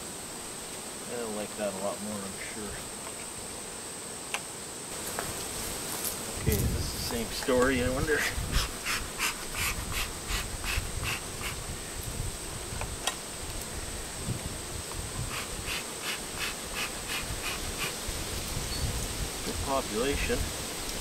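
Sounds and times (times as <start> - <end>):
bellows smoker puffing hiss: 0.0 - 21.0.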